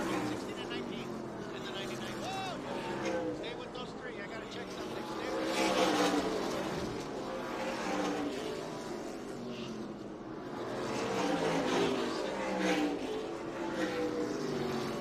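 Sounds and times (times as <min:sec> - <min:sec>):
race car engines passing: 0:00.0 - 0:15.0.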